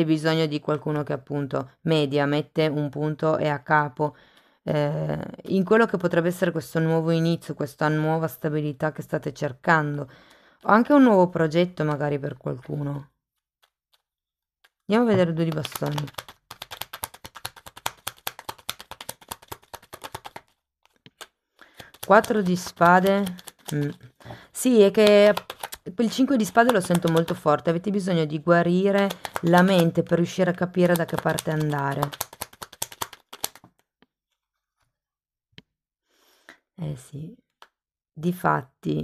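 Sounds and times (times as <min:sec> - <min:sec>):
cards being shuffled: 0:15.2 - 0:24.1, 0:24.8 - 0:27.4, 0:28.8 - 0:30.1, 0:30.7 - 0:33.8.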